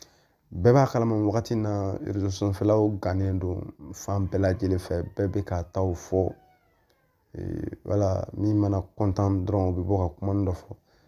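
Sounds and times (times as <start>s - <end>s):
man speaking: 0.5s - 6.6s, 7.3s - 10.8s.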